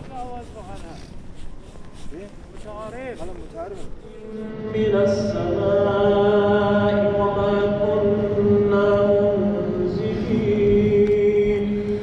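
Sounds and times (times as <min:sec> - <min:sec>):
person chanting a prayer: 0:04.0 - 0:12.0.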